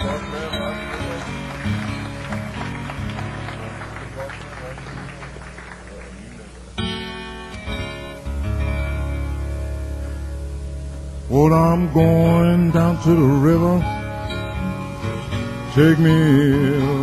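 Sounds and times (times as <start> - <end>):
fingerpicked acoustic guitar: 0.0 - 4.3, 6.4 - 17.0
bass: 0.0 - 17.0.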